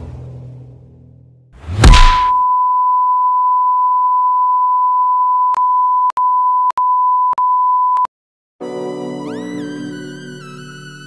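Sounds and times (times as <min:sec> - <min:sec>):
music: 0:08.6 - 0:11.0.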